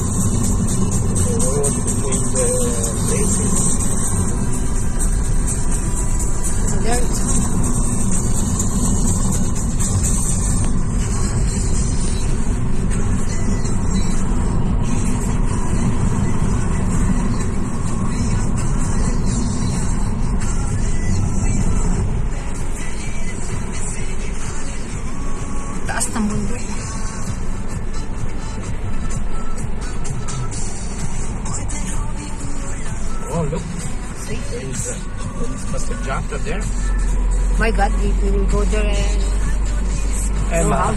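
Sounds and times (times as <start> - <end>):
car road and wind rumble: 0.0 - 40.9
music playing: 0.0 - 40.9.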